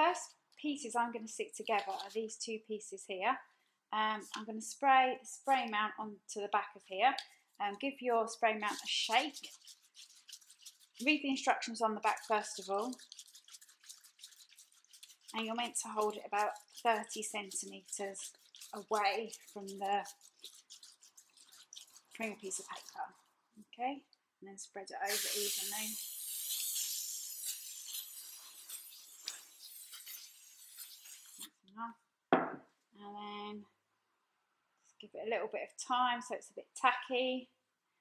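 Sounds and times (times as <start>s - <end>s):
aerosol spray hissing: 25.1s - 31.5s.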